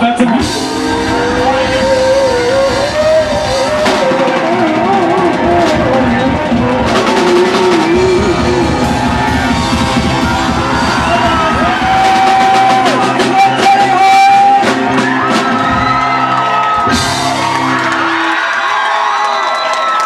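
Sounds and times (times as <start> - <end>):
live rock band playing: 0.0 - 19.1
crowd noise: 0.0 - 20.0.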